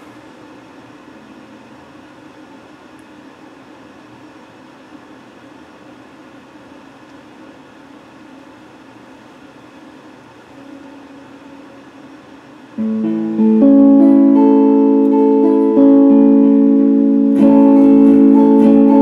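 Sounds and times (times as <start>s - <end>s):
electric guitar picked quietly: 12.8s - 19.0s.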